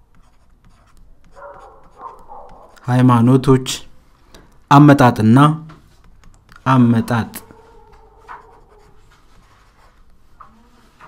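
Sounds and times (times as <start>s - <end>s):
person speaking: 0.7s - 11.0s
computer keyboard typing: 6.0s - 6.7s.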